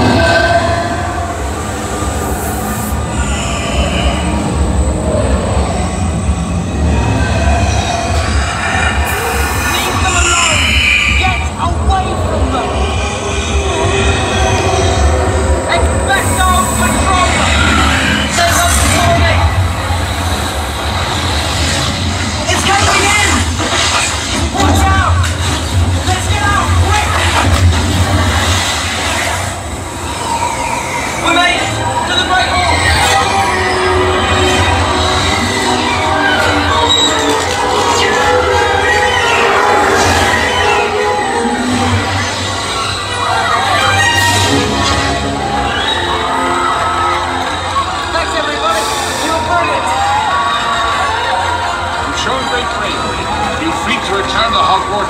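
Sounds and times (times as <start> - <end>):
deep rumble: 0.0 - 40.6
loud wash of sound effects: 0.0 - 43.8.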